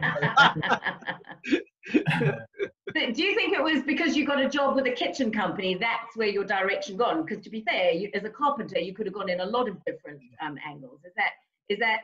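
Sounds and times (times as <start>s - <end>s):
people laughing: 0.0s - 2.8s.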